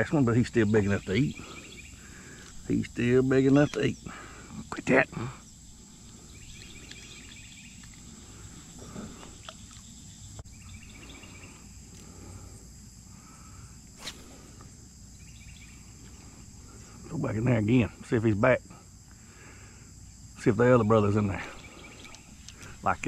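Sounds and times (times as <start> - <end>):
faint chirps: 0.0 - 23.0
insects chorus: 0.0 - 23.0.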